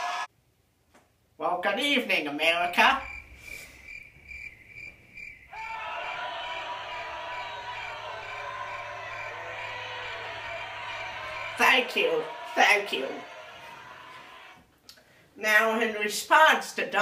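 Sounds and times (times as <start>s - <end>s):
crowd cheering: 0.0s - 0.3s, 5.3s - 14.7s
crickets chirping: 2.7s - 9.7s.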